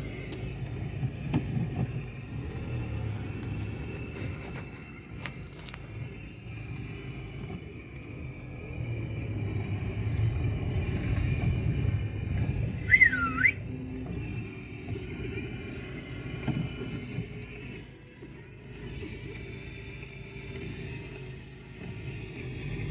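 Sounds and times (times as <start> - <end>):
car engine idling: 0.0 - 22.9
short rising and falling whistle: 12.8 - 13.9.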